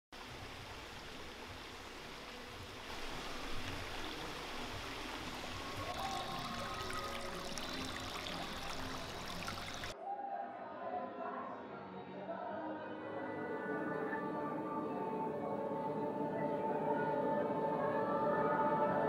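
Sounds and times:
waterfall rushing water: 0.2s - 10.0s.

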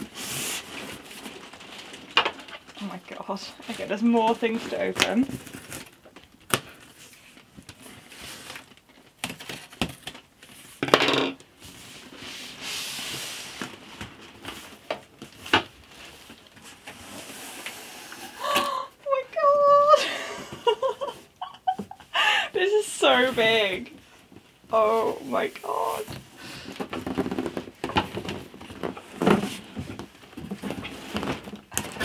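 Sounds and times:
cardboard scraping and rustling: 11.6s - 18.3s, 24.8s - 32.0s.

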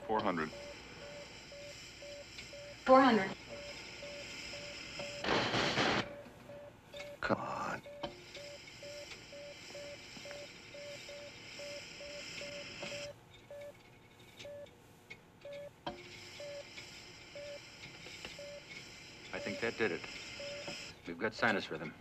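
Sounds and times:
heart monitor beeping: 0.0s - 13.8s, 14.4s - 14.7s, 15.4s - 21.0s.

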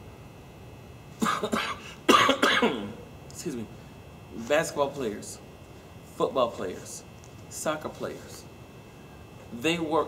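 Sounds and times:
man coughing: 1.2s - 3.0s.

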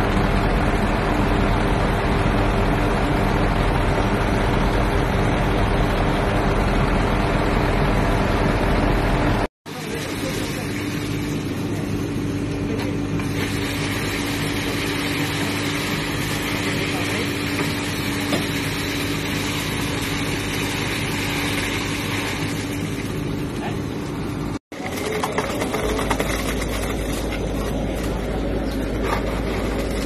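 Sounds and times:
heavy machinery diesel engine: 0.0s - 30.0s
workers' voices: 9.7s - 13.6s, 14.4s - 18.6s, 23.4s - 24.0s, 24.7s - 30.0s.

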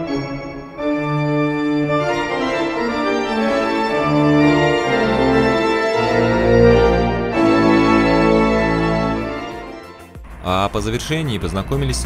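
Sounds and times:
pipe organ chords: 0.0s - 10.7s
deep organ pedal bass notes: 0.0s - 12.0s.

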